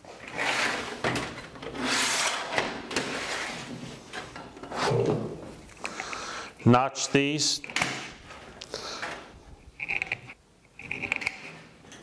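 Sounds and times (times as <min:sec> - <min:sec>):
steel scribe scraping sheet metal: 0:01.7 - 0:03.7.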